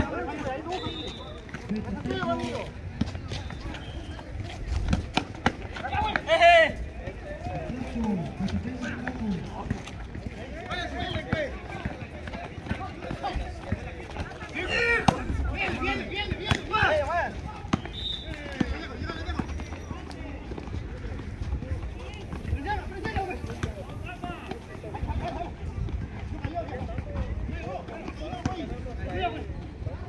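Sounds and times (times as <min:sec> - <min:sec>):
players shouting: 0:05.4 - 0:20.4.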